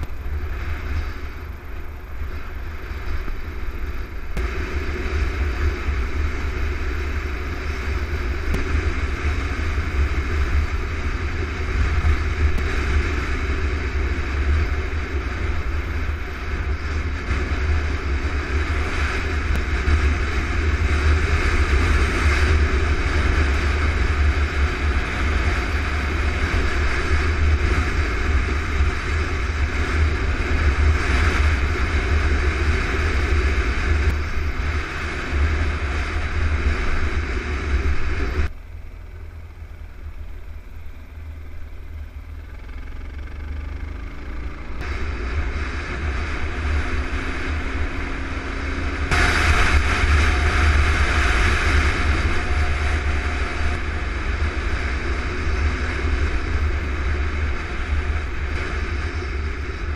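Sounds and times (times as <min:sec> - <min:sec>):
motorcycle engine cruising: 0:00.0 - 0:59.9
wind rumble on microphone: 0:00.0 - 0:59.9.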